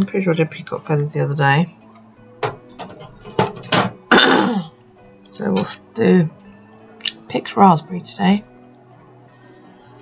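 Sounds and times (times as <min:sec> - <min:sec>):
knocks and clicks on a desk: 0:02.4 - 0:04.0.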